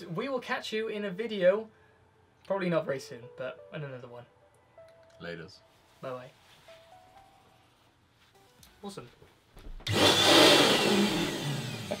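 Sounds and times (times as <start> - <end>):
electric duster blowing air: 9.8 - 12.0.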